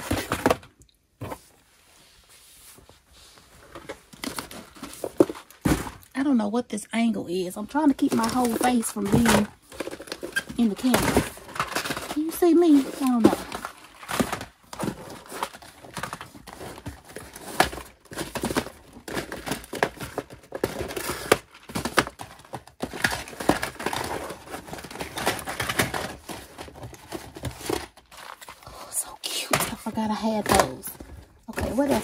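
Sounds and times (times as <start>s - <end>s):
cardboard boxes knocking and clattering: 0.0s - 1.5s, 3.7s - 6.1s, 7.9s - 28.5s, 29.5s - 32.0s
packaging rustle: 0.0s - 1.6s, 3.4s - 6.1s, 7.7s - 32.0s.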